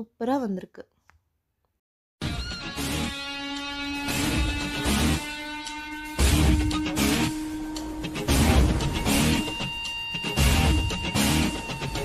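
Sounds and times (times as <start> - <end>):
background music with sustained tones: 2.2 - 12.0.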